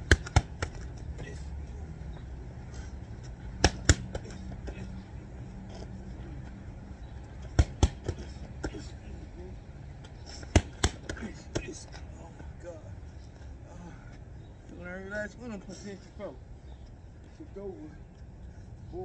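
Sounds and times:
boxing gloves hitting focus mitts: 0:00.0 - 0:01.4, 0:03.5 - 0:04.8, 0:07.4 - 0:08.8, 0:10.3 - 0:11.8.

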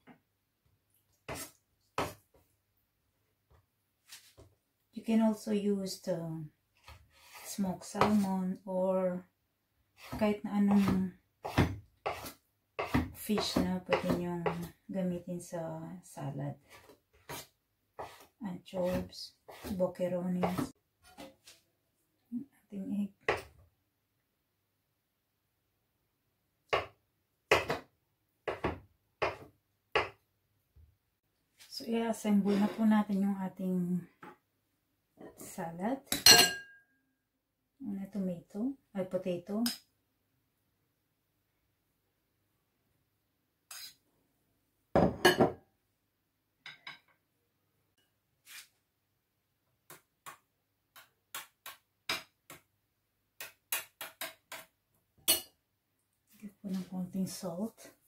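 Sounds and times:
knife chopping on wooden board: 0:10.0 - 0:14.7, 0:18.8 - 0:19.8, 0:26.7 - 0:30.2.

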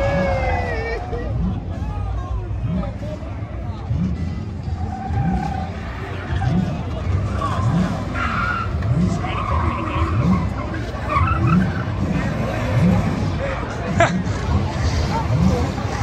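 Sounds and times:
car engine revving: 0:02.6 - 0:16.0
tyres squealing on asphalt: 0:04.5 - 0:13.8.

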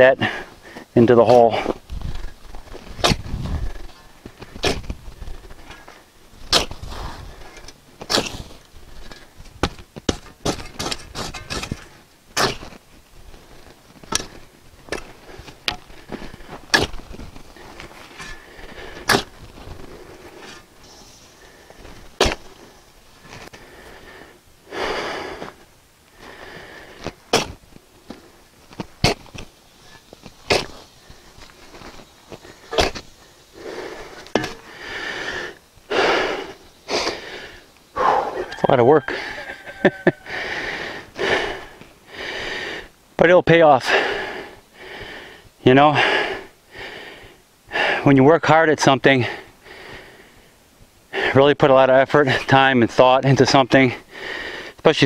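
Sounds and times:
shovel blade scraping soil: 0:06.4 - 0:09.3, 0:10.1 - 0:12.8, 0:29.0 - 0:30.9.

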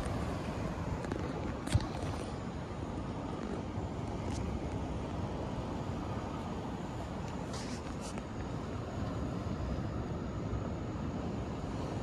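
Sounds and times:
ocean surf: 0:00.0 - 0:12.0.

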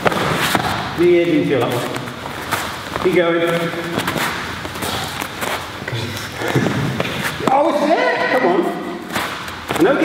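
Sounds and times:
man talking in echoing hall: 0:00.0 - 0:02.2, 0:02.9 - 0:10.0.

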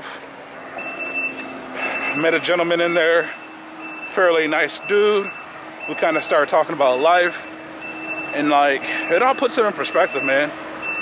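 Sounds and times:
vehicle backup alarm beeping: 0:00.8 - 0:11.0.

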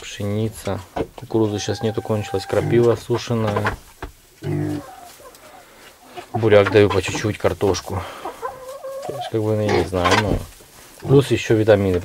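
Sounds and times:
hens clucking quietly: 0:00.6 - 0:12.0.

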